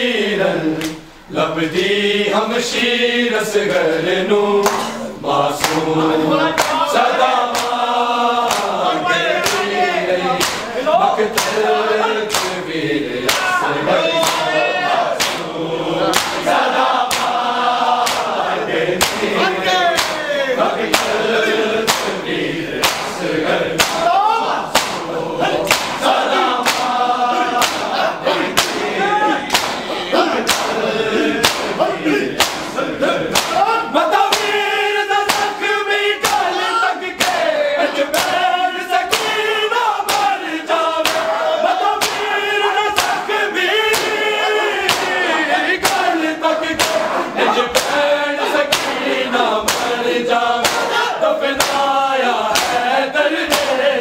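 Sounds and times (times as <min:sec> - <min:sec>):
crowd of men singing: 0:00.0 - 0:54.0
hands slapping chests: 0:04.6 - 0:04.9, 0:05.6 - 0:05.9, 0:06.6 - 0:06.9, 0:07.5 - 0:07.8, 0:08.4 - 0:08.8, 0:09.4 - 0:09.7, 0:10.4 - 0:12.6, 0:13.2 - 0:13.6, 0:14.2 - 0:14.5, 0:15.2 - 0:15.5, 0:16.1 - 0:18.4, 0:19.0 - 0:19.3, 0:20.0 - 0:20.3, 0:20.9 - 0:21.2, 0:21.9 - 0:22.2, 0:22.8 - 0:23.2, 0:23.8 - 0:25.1, 0:25.7 - 0:27.0, 0:27.6 - 0:28.9, 0:29.5 - 0:30.8, 0:31.4 - 0:31.8, 0:32.4 - 0:33.7, 0:34.3 - 0:34.6, 0:35.3 - 0:35.6, 0:36.2 - 0:36.5, 0:37.2 - 0:37.4, 0:38.1 - 0:38.4, 0:39.1 - 0:39.4, 0:40.1 - 0:40.3, 0:41.0 - 0:41.4, 0:42.0 - 0:43.3, 0:43.9 - 0:44.2, 0:44.8 - 0:48.0, 0:48.7 - 0:50.0, 0:50.6 - 0:51.9, 0:52.5 - 0:52.8, 0:53.5 - 0:53.8.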